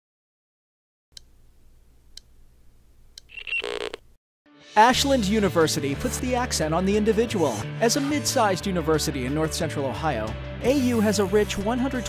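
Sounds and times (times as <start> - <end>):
telephone ring: 3.3 - 4.0.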